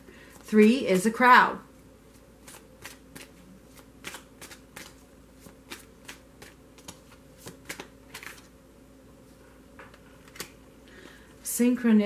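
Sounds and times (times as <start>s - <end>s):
cards being shuffled: 2.1s - 8.5s, 10.2s - 10.6s.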